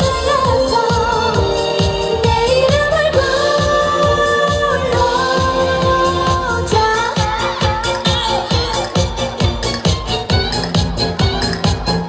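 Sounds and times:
pop song over sound system: 0:00.0 - 0:12.0
steady dance beat: 0:00.0 - 0:12.0.

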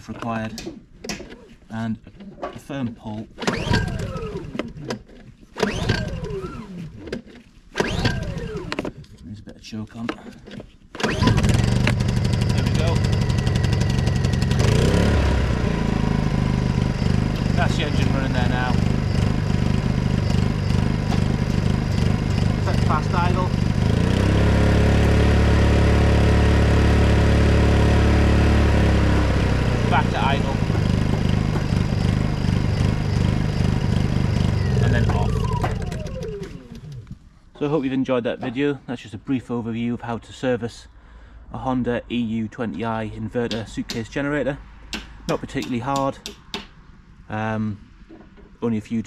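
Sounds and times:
engine winding down whine: 0:03.4 - 0:04.9, 0:05.6 - 0:07.1, 0:07.8 - 0:08.9, 0:11.0 - 0:37.3
generator engine running: 0:03.4 - 0:05.0, 0:05.6 - 0:07.0, 0:07.8 - 0:08.9, 0:11.0 - 0:37.5.

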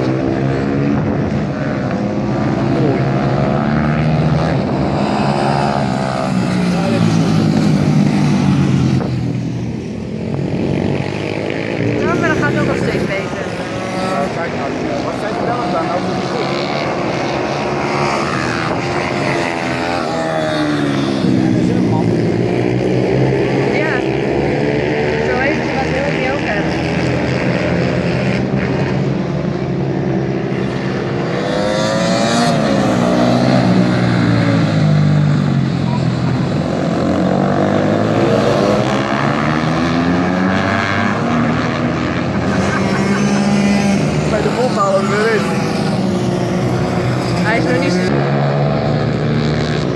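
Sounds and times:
racing motorcycle engines revving: 0:00.0 - 0:49.9.

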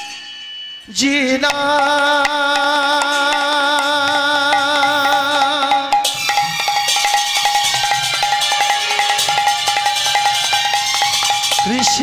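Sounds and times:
metallic hand percussion: 0:00.0 - 0:12.0.

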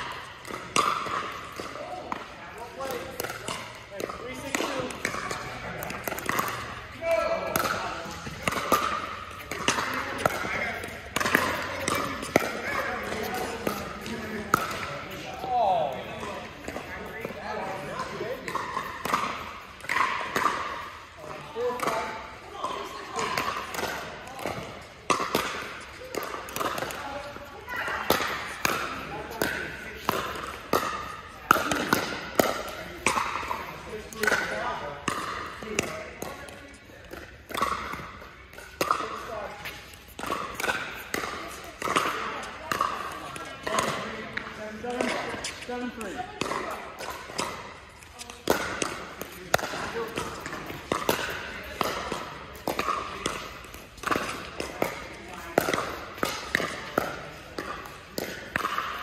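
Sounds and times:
people talking: 0:01.6 - 0:19.3, 0:21.2 - 0:30.5, 0:41.2 - 0:47.5
paddles striking plastic ball: 0:48.3 - 0:59.0.

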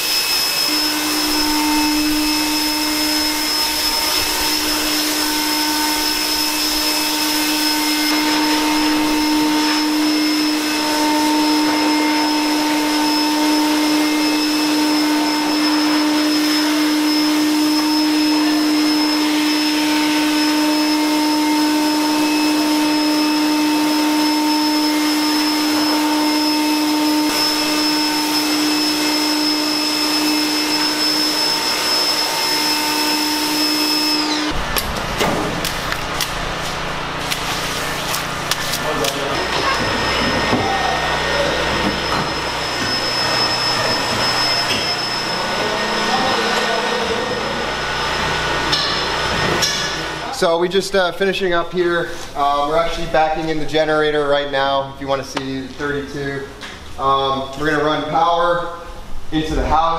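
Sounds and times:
pressure washer motor hum: 0:00.0 - 0:53.6.

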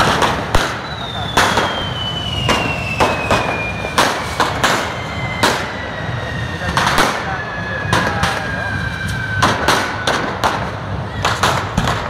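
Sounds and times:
firecrackers banging: 0:00.0 - 0:12.0.

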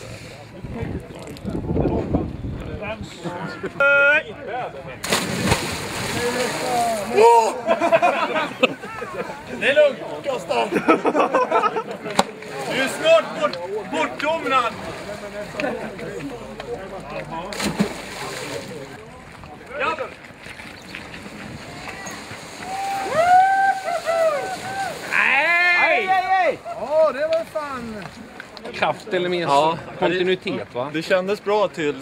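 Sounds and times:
water splashing and sloshing: 0:05.0 - 0:07.7, 0:12.1 - 0:23.1, 0:23.7 - 0:25.5
laughter: 0:07.4 - 0:09.6, 0:10.6 - 0:12.1
loud shouting: 0:22.6 - 0:26.9.

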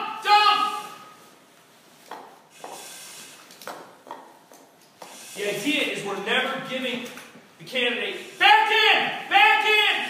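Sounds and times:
man speaking: 0:00.0 - 0:01.1, 0:05.3 - 0:10.0
breathing through a regulator: 0:02.5 - 0:03.6, 0:05.0 - 0:05.8.

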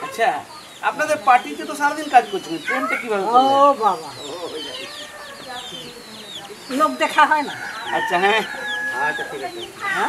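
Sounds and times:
chickens clucking: 0:00.0 - 0:10.0
high falling peeps: 0:00.5 - 0:10.0.

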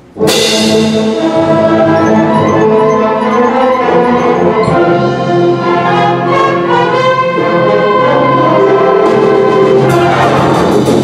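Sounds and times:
concert band playing: 0:00.0 - 0:11.0.

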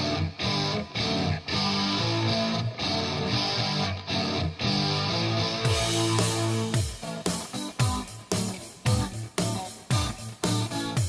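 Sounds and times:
electric guitar chord riff: 0:00.0 - 0:11.0.

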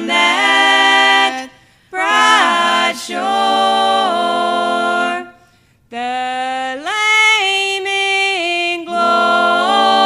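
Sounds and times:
women singing gospel: 0:00.0 - 0:10.0.

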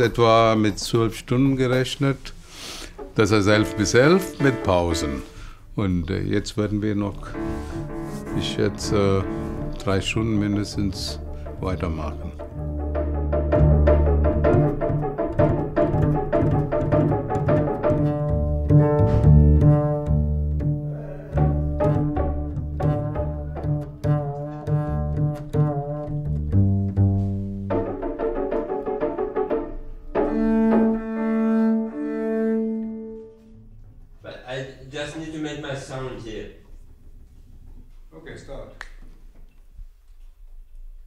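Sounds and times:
double bass notes: 0:00.0 - 0:34.2
layered melodic notes: 0:03.0 - 0:05.4, 0:06.9 - 0:33.7.

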